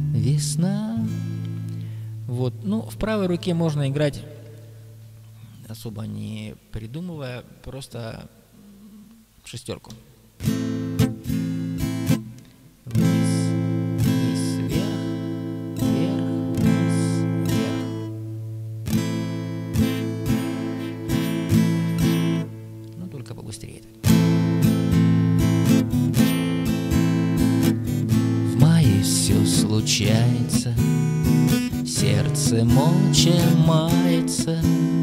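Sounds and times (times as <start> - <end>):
acoustic guitar strumming: 0.0 - 5.2, 10.4 - 35.0.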